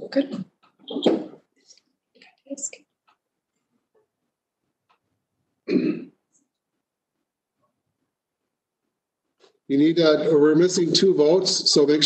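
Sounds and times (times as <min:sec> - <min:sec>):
person clearing throat: 0:05.7 - 0:06.2.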